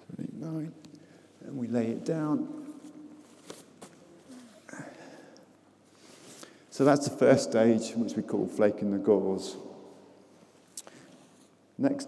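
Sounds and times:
fabric rustle: 0:02.0 - 0:04.7.

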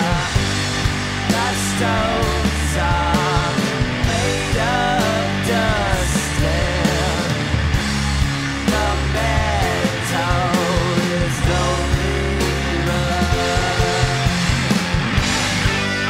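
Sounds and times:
man singing: 0:00.0 - 0:00.5, 0:01.3 - 0:07.5, 0:08.6 - 0:14.4
rock band playing: 0:00.0 - 0:16.0.

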